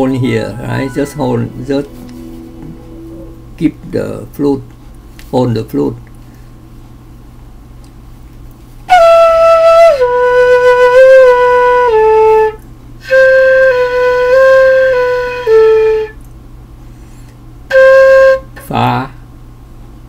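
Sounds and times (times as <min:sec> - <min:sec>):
flute playing stepped notes: 0:00.0 - 0:04.2.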